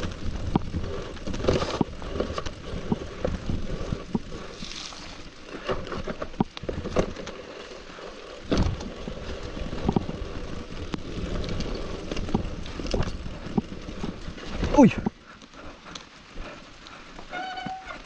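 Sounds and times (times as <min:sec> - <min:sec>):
bike knocking and rattling: 0:00.0 - 0:18.0
bike tyre noise on dirt: 0:00.0 - 0:18.0.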